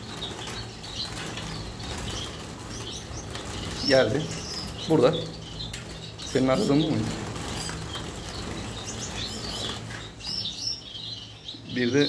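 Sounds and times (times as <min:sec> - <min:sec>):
birds fluttering wings: 0:00.0 - 0:11.2.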